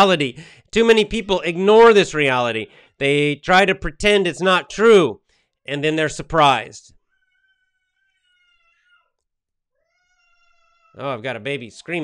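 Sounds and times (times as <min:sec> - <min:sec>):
baby screaming in distance: 0:07.1 - 0:09.2, 0:09.8 - 0:11.0.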